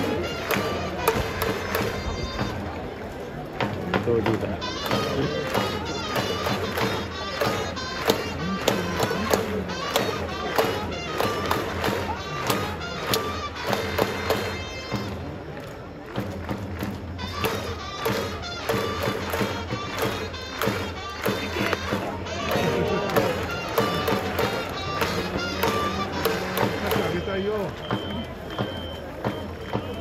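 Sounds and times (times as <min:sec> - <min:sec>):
crowd clapping in time: 0:00.0 - 0:30.0
crowd chanting: 0:19.3 - 0:27.4.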